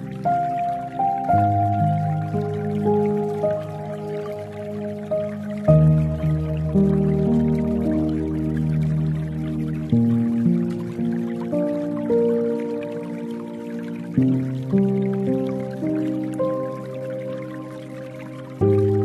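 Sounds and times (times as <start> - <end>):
soft piano music: 0.0 - 19.0.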